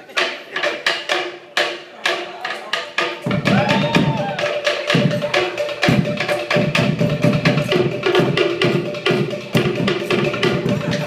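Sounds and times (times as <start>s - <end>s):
wooden slit drums beating: 0.0s - 11.0s
bass drum: 3.2s - 11.0s.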